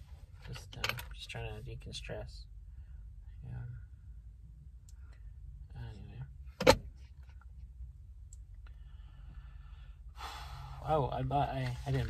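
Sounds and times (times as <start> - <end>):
car cabin rumble: 5.8 - 8.0.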